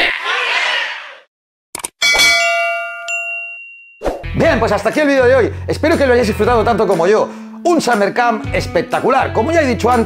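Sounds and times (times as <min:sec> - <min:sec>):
bell-like chime effect: 0:02.0 - 0:04.0.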